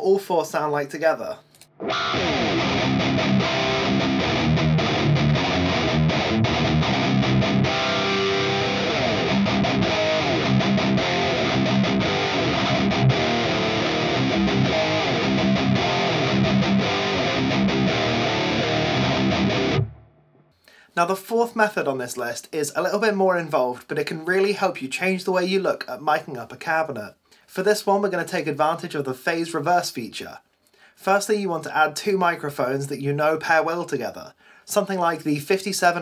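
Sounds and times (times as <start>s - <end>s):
high-gain electric guitar riff: 1.6s - 20.4s.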